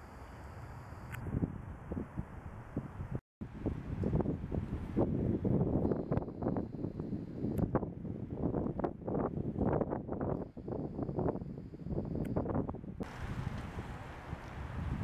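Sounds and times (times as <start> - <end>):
wind buffeting microphone: 1.1 - 15.0.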